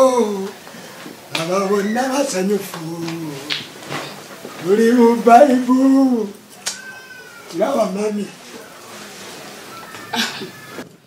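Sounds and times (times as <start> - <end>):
wavering meow-like call: 6.6 - 7.7, 8.6 - 10.9.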